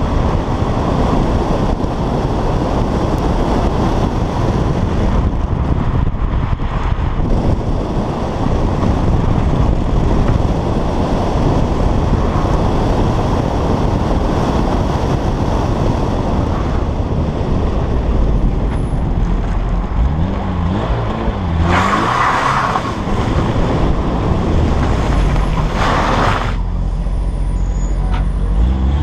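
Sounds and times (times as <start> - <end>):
rally car engine revving: 0.0 - 29.0.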